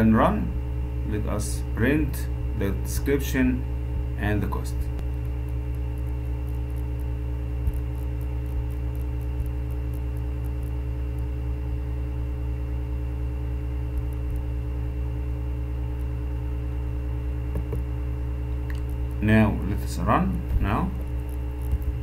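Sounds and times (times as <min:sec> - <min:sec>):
electrical hum with held tones: 0:00.0 - 0:22.0
faint clicks: 0:13.9 - 0:14.5.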